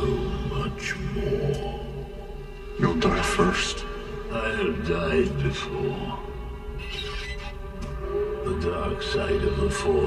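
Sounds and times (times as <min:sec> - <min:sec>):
dark ominous film score: 0:00.0 - 0:10.0.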